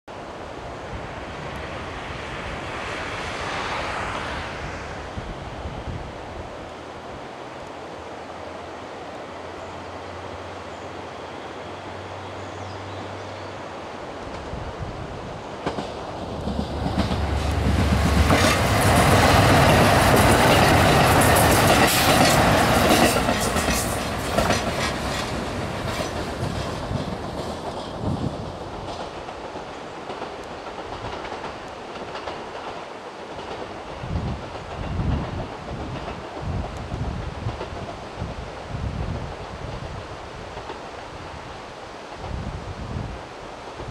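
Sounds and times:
wind buffeting microphone: 0.2s - 7.4s, 14.2s - 32.7s, 33.3s - 43.9s
diesel train engines running: 15.0s - 37.9s
train wheels clacking over rail joints: 15.6s - 38.0s.

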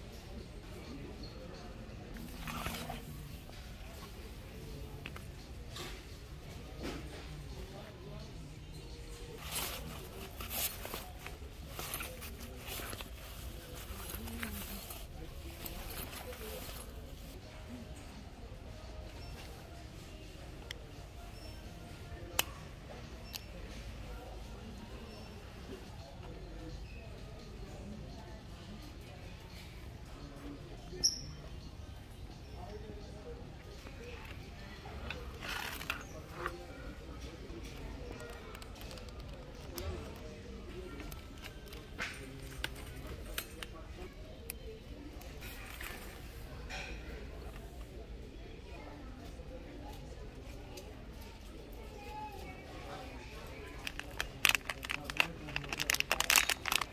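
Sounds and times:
faint background voices: 0.0s - 56.9s
fabric bag rustling: 9.4s - 17.4s.

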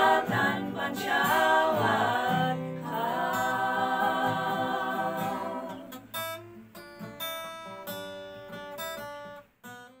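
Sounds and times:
acoustic guitar strums: 0.0s - 10.0s.

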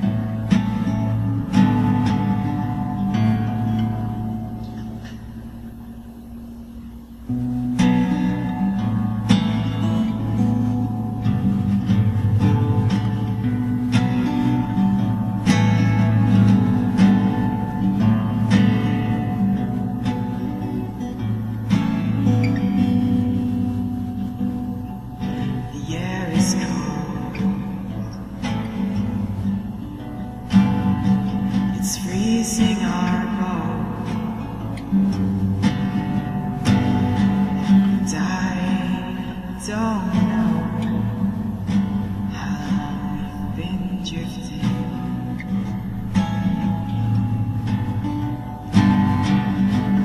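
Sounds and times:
acoustic guitar chords ringing: 0.0s - 50.0s.

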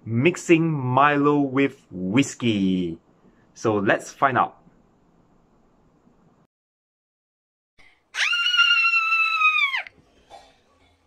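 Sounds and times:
high-pitched scream: 8.1s - 10.0s.

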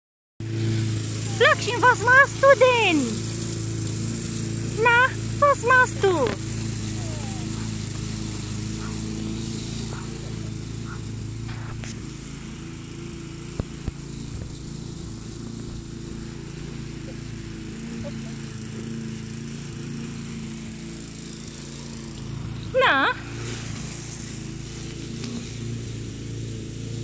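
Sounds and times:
steady engine drone: 0.4s - 27.0s.

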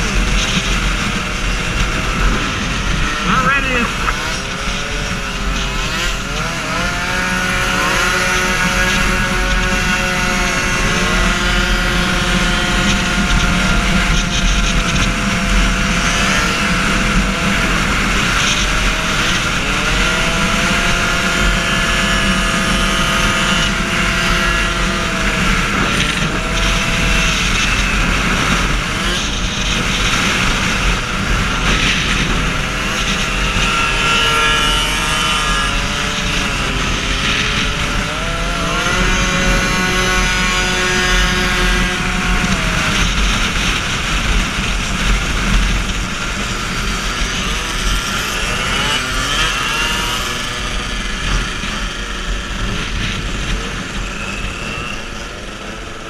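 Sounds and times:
moped engines running: 0.0s - 56.0s
wind rushing over microphone: 0.0s - 56.0s.

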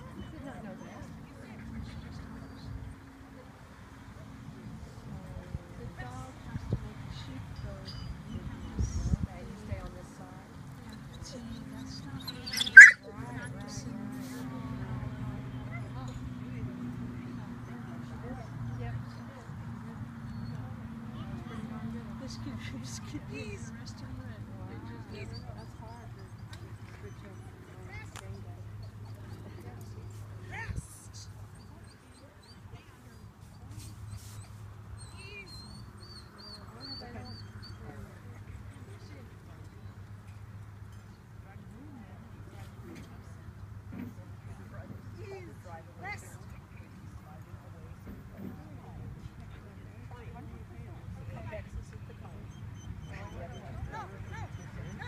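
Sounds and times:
indistinct talking: 0.0s - 55.0s
dog whining: 12.2s - 13.1s.

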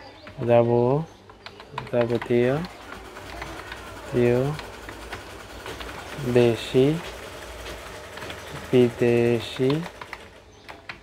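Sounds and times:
keyboard keys clicking: 1.2s - 11.0s.

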